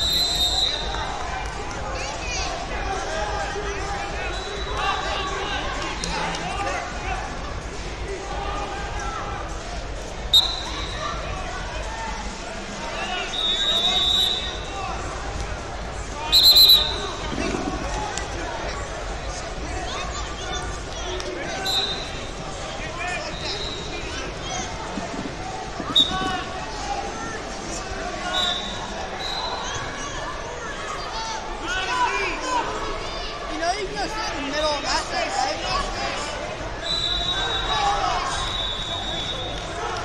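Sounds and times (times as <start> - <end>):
murmur of voices in a hall: 0.0 - 40.0.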